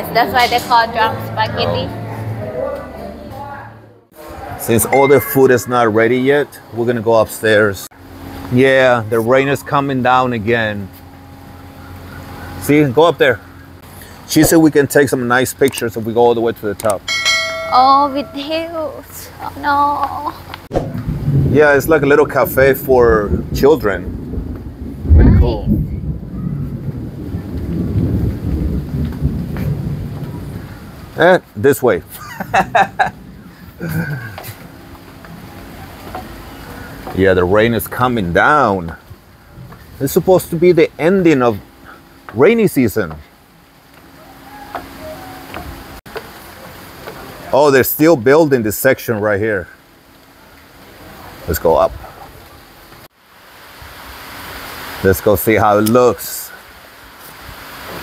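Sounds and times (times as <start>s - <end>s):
rain falling: 5.1s - 58.0s.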